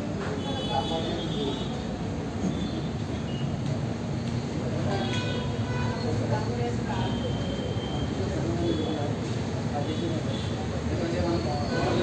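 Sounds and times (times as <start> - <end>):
faint indistinct voices: 4.4 - 12.0.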